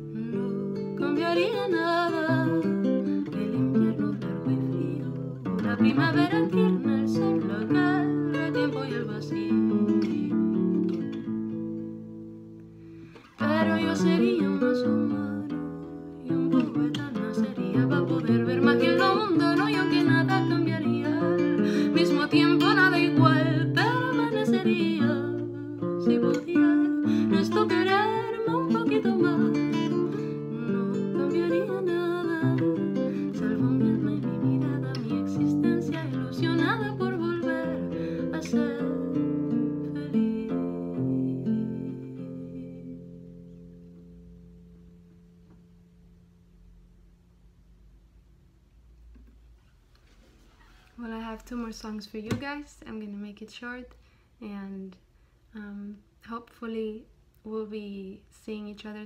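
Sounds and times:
woman singing slow song: 0.0 - 11.0, 13.2 - 43.5
classical guitar fingerpicked: 0.0 - 47.0.

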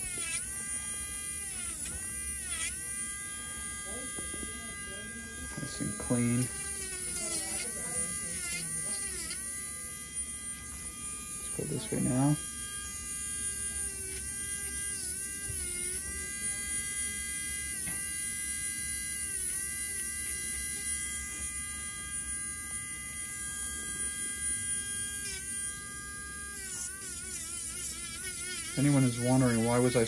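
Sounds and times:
electric nail drill whining: 0.0 - 30.0.

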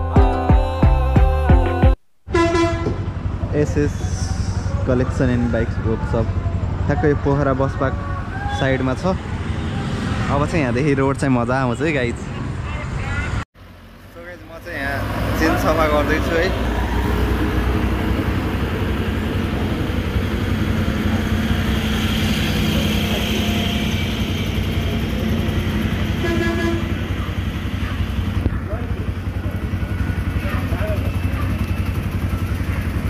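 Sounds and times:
motorcycle engine running: 17.6 - 33.0.

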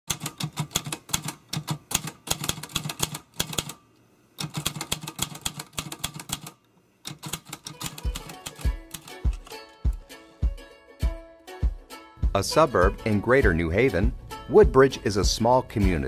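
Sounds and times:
typewriter keys clacking: 0.1 - 3.8, 4.4 - 9.6.

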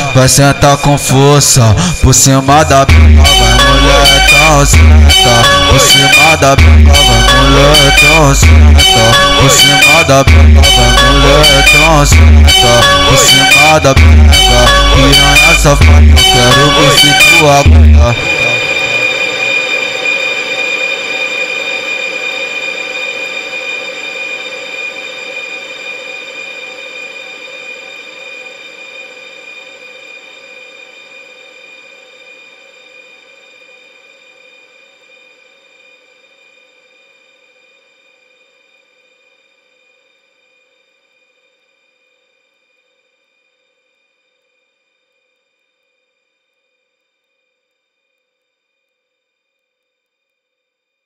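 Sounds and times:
high-pitched electronic chord: 0.0 - 32.8.

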